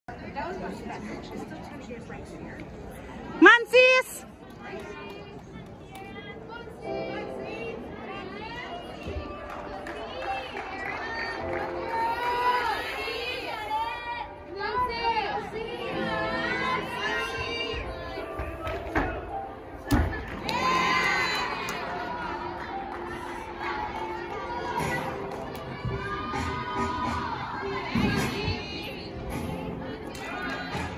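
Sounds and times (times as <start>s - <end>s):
gym hall hubbub: 0.1s - 30.9s
murmur of spectators chatter: 0.1s - 30.9s
children shouting and cheering: 20.4s - 28.1s.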